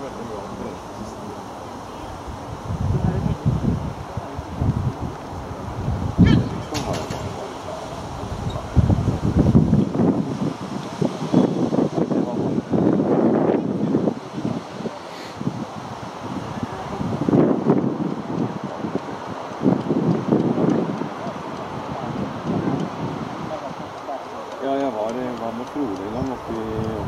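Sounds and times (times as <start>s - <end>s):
wind noise on microphone: 0.0s - 27.0s
person talking: 23.6s - 27.0s.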